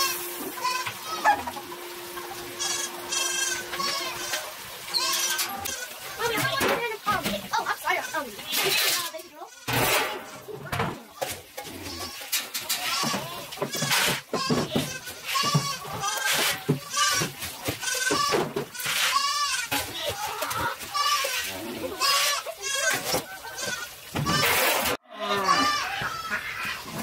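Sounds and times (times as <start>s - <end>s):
goats bleating: 0.0s - 1.6s, 2.3s - 10.6s, 11.2s - 27.0s
metal scoop clanking in feed bin: 9.7s - 16.7s.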